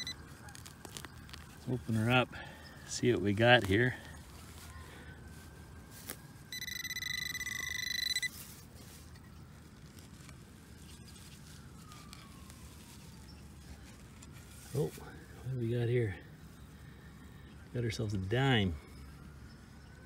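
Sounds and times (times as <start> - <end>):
metal detector pulsing tone: 0.0 - 0.2, 6.5 - 8.4
low outdoor background: 0.0 - 20.0.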